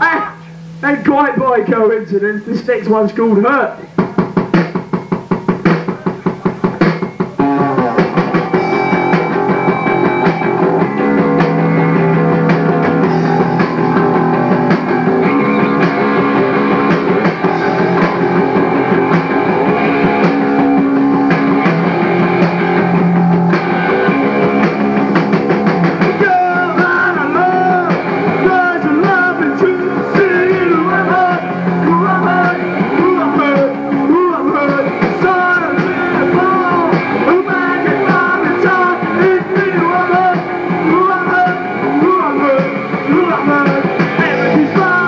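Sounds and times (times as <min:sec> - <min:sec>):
punk rock band playing: 0:00.0 - 0:45.0
rapid drum hits: 0:03.9 - 0:45.0
person singing: 0:25.8 - 0:45.0.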